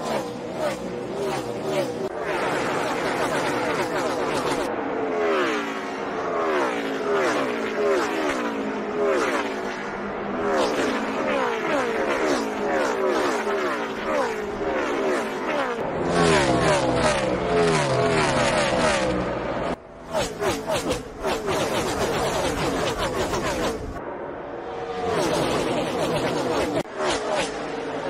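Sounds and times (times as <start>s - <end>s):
race car engines passing by: 0.0s - 28.0s.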